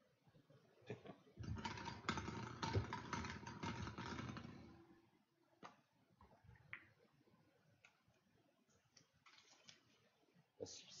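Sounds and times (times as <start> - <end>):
balls clattering in glass bowl: 1.4 - 4.8.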